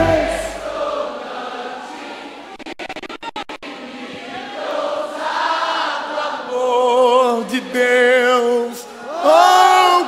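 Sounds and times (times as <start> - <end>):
congregation singing: 0.0 - 2.6, 3.6 - 10.0.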